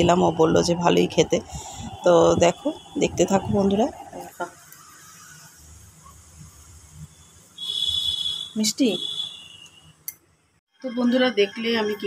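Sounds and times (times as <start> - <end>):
steady high-pitched tone: 0.0 - 6.2.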